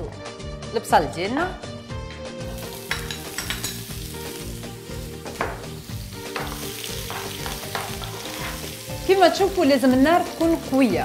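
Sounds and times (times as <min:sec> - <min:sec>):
onions sizzling in oil: 0:02.4 - 0:11.0.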